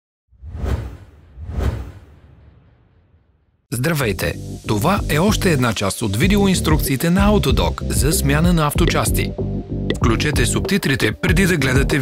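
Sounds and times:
whoosh sound effects: 0:00.3 - 0:03.4.

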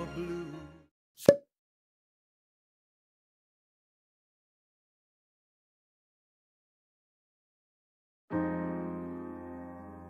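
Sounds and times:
pop sound effect with ring: 0:01.2 - 0:01.5.

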